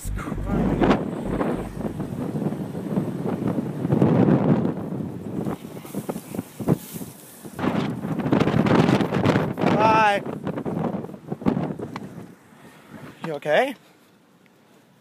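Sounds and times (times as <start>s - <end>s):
wind buffeting microphone: 0.0s - 13.2s.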